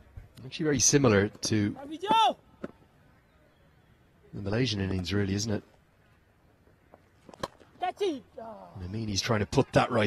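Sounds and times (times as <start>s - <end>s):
faint ground ambience: 0.0s - 10.0s.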